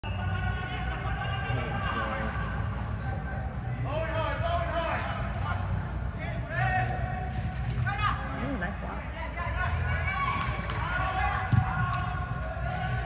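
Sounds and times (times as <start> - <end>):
players shouting in a hall: 0.0 - 8.4, 9.1 - 13.0.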